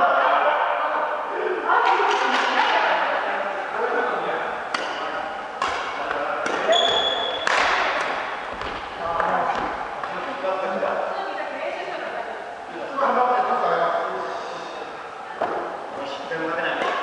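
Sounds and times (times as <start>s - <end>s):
racket hitting shuttlecock: 4.7s - 10.2s
high squeak: 6.7s - 7.5s.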